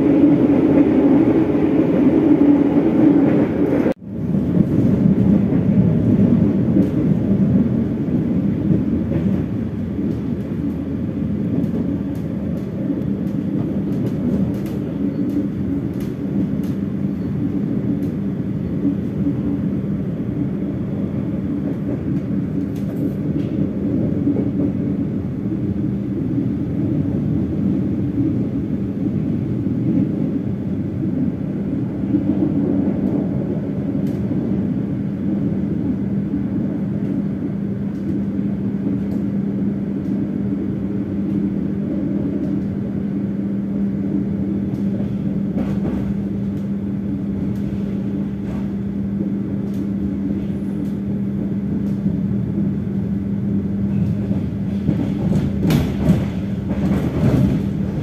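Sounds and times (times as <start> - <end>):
train rumbling on track: 0.0 - 58.0.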